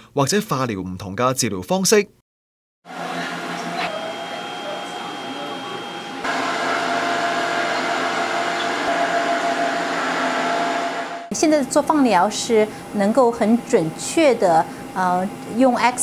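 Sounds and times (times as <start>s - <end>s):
thin high whine: 2.9s - 11.4s
machinery whirring and humming: 2.9s - 16.0s.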